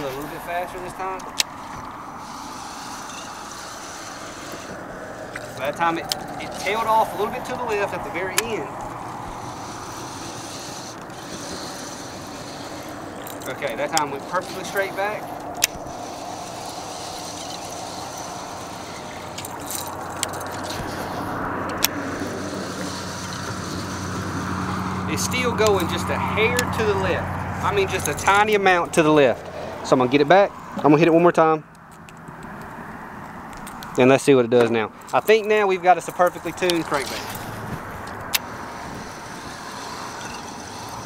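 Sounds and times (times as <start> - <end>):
sharp tackle clicks: 0.0 - 29.2, 31.6 - 41.0
fishing reel whirring: 0.0 - 29.8, 35.0 - 41.0.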